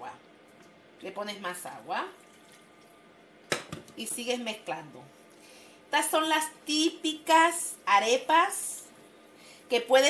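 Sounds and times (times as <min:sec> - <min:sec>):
water trickling into a bowl: 0:02.2 - 0:03.0.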